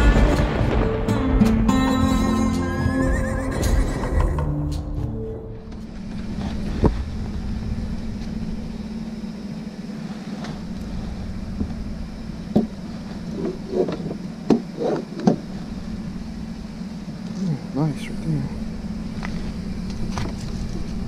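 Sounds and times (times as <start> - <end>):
intro music: 0.0 - 5.7
steady low hum: 0.0 - 21.0
horse whinny: 2.7 - 4.5.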